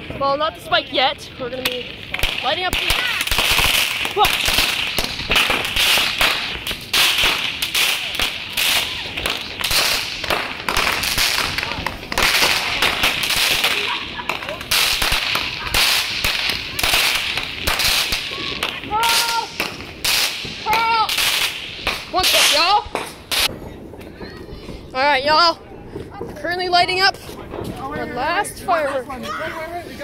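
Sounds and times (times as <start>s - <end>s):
fireworks crackling and popping: 0.0s - 30.0s.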